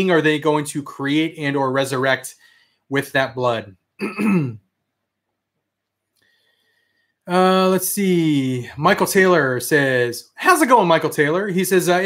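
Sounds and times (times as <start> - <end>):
man clearing throat: 4.0 - 4.7.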